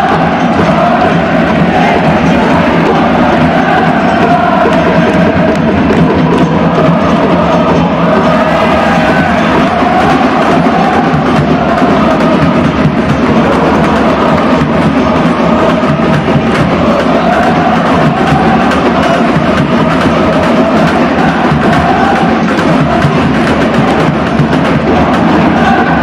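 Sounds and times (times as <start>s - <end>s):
crowd chanting in unison: 0.0s - 26.0s
steady drumming: 0.0s - 26.0s.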